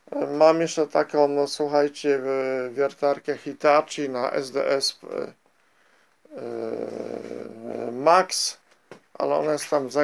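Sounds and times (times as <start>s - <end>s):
man saying uhh: 6.3s - 8.6s.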